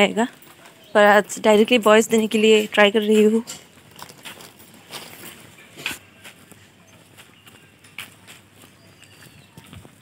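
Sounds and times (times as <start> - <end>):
footsteps on pavement: 0.0 - 10.0.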